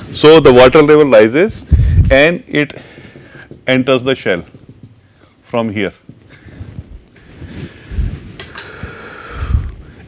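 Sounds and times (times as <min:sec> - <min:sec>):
low thuds: 0:01.6 - 0:05.3.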